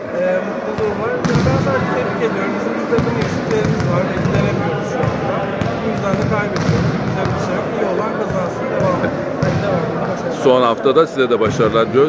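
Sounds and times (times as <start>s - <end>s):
ball thudding on court floor: 3.0s - 7.3s.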